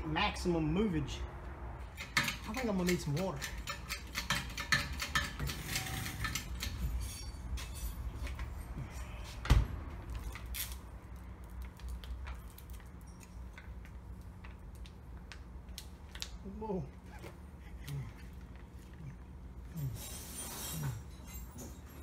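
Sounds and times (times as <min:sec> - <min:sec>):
metal tools clinking: 0:01.9 - 0:09.2, 0:19.8 - 0:22.0.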